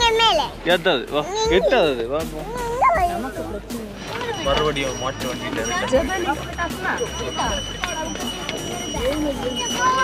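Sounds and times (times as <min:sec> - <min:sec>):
young child's voice: 0:00.0 - 0:00.6, 0:02.4 - 0:03.2.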